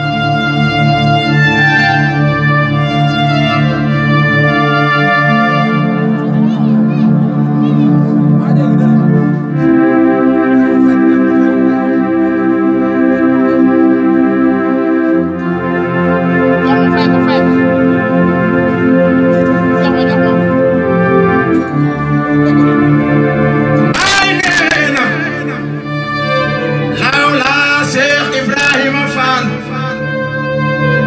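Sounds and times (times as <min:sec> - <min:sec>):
electronic keyboard organ chords: 0:00.0 - 0:31.0
man speaking into a microphone: 0:23.9 - 0:25.7
man singing devotional chant: 0:27.0 - 0:30.0.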